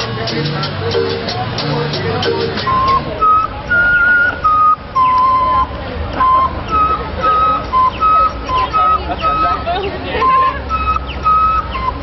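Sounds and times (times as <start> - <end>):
background music with rattling percussion: 0.0 - 5.0, 10.6 - 12.0
hand whistle melody: 0.0 - 12.0.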